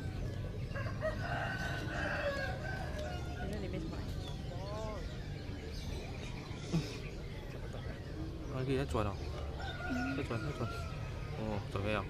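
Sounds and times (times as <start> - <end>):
rooster crowing: 0.7 - 3.5, 9.6 - 11.0.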